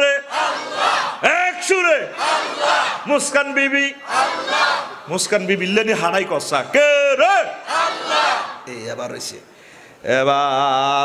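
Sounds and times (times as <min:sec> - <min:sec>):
man preaching over loudspeaker: 0:00.0 - 0:00.3, 0:01.2 - 0:02.2, 0:03.0 - 0:04.0, 0:05.1 - 0:07.6, 0:08.7 - 0:09.4.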